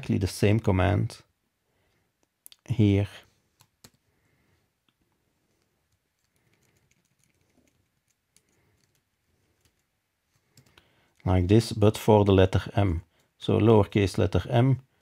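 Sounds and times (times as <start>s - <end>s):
keyboard and mouse clicks: 3.6s - 4.0s, 5.9s - 9.9s, 10.5s - 10.8s.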